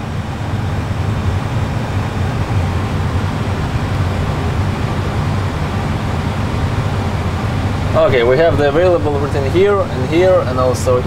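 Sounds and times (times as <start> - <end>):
rushing air noise: 0.0 - 11.0
steady low hum: 0.0 - 11.0.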